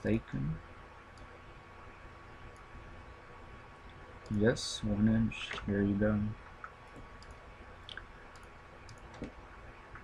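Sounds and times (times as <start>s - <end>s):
steady faint hum: 0.0s - 10.0s
computer mouse clicking: 6.6s - 9.4s.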